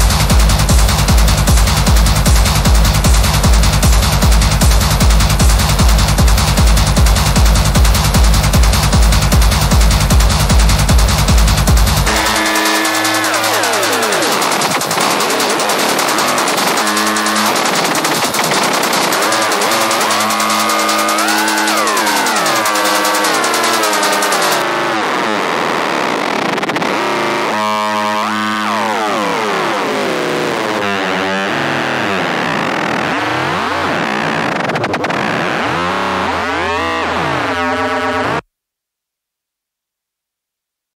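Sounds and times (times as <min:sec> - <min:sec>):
dark techno music: 0:00.0 - 0:38.4.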